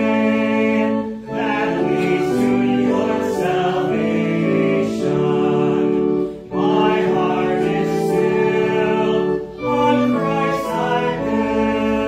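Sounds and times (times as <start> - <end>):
group singing a hymn: 0.0 - 12.0.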